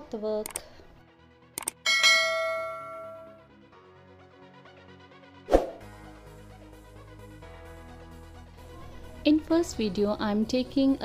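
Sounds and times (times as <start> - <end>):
quick clicks: 0.4 - 0.7, 1.6 - 1.8
bell chime ringing: 1.8 - 3.5.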